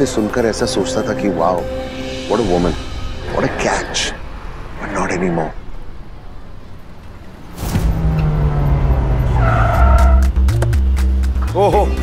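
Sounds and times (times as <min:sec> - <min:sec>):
car driving past and braking: 0:02.9 - 0:11.0
tire squeal: 0:07.4 - 0:10.5.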